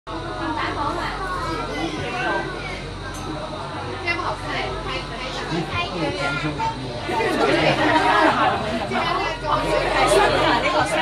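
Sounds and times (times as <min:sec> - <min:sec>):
people talking at once: 0:00.1 - 0:11.0.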